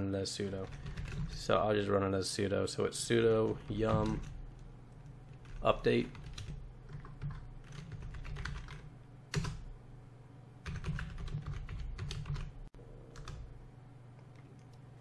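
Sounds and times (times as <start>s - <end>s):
computer keyboard typing: 0.6s - 1.4s, 3.5s - 4.6s, 5.3s - 9.7s, 10.6s - 13.5s.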